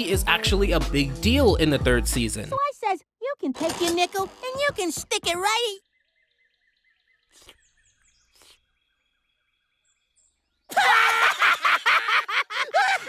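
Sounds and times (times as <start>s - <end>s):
faint bird chirps: 5.5s - 10.7s
cartoon characters laughing hysterically: 10.7s - 13.0s.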